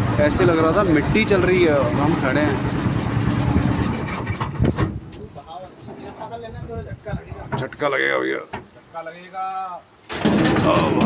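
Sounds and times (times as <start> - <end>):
boat motor rumbling: 0.0 - 5.1.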